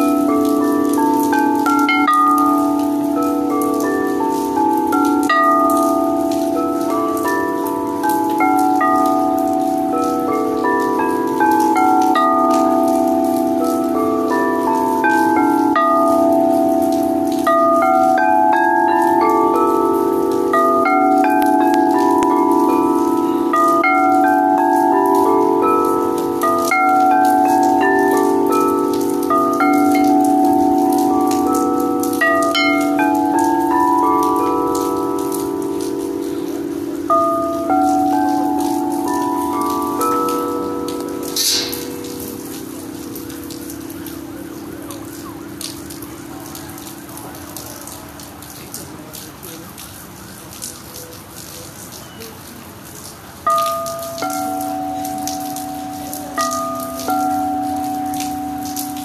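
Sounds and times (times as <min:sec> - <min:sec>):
crystal singing bowls ringing: 0:00.0 - 0:46.3, 0:53.4 - 0:59.0
high bell-like notes: 0:00.0 - 0:46.4
light rain patter: 0:00.0 - 0:59.0.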